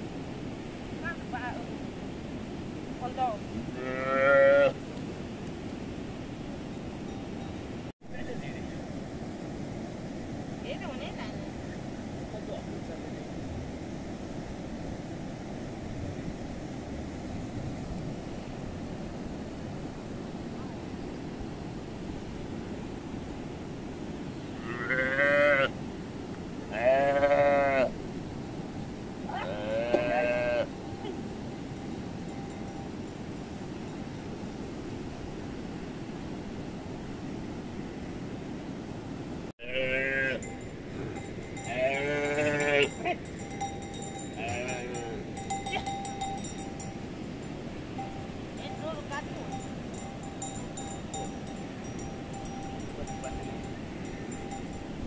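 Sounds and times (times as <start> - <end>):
calf bleating: 3.7 - 4.8, 24.6 - 25.7, 26.7 - 27.9, 29.4 - 30.7, 39.6 - 40.5, 41.6 - 43.1, 44.4 - 45.9.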